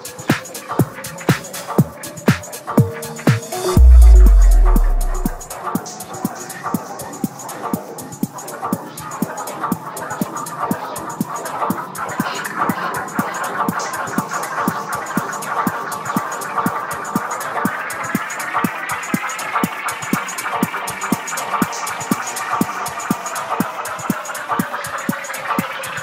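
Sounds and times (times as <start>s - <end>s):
kick drum with hi-hats: 0.1s - 5.5s.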